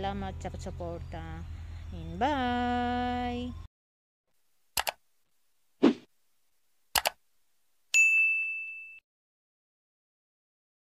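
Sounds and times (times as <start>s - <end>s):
bright bell ding: 8.0s - 9.0s.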